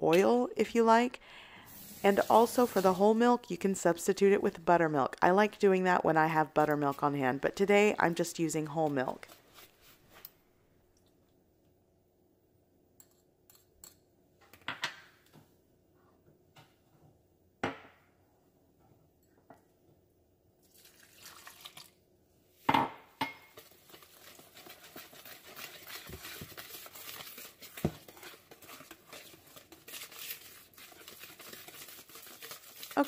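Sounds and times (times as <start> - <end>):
whisk clicking and scraping in bowl: 23.5 - 33.0
whisk knocking bowl: 23.5 - 33.0.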